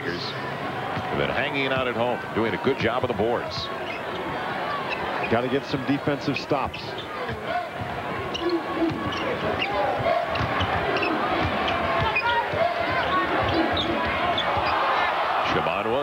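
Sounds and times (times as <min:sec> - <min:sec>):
crowd noise: 0:00.0 - 0:16.0
sneakers squeaking: 0:03.4 - 0:05.4, 0:06.6 - 0:15.2.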